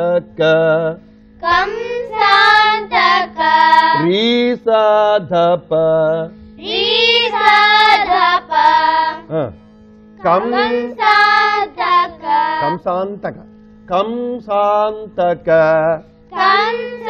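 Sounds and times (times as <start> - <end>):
children singing devotional song: 1.4 - 4.6, 6.6 - 9.3, 10.2 - 12.9, 16.3 - 17.0.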